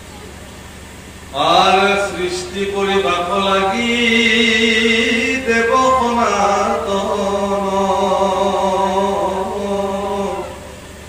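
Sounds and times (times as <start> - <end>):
man chanting in long notes: 1.3 - 11.0.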